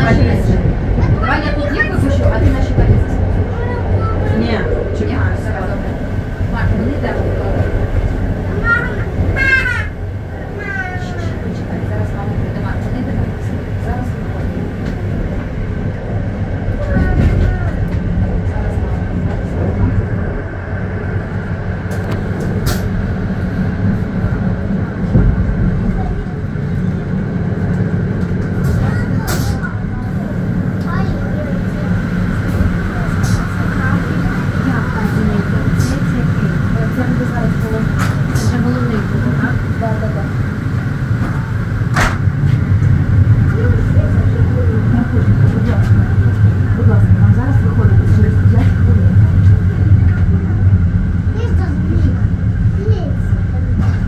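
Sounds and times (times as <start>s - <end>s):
train low rumble: 0.0s - 54.0s.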